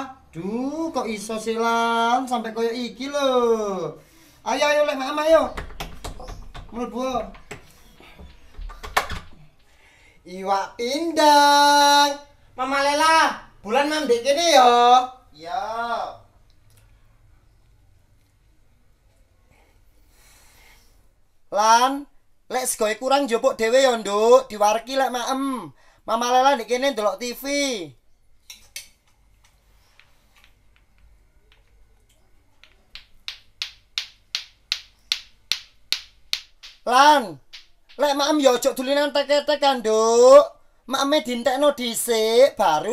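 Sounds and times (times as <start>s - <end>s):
person speaking: 0.0s - 9.4s, 36.6s - 42.9s
plastic balls clacking together: 32.6s - 38.4s.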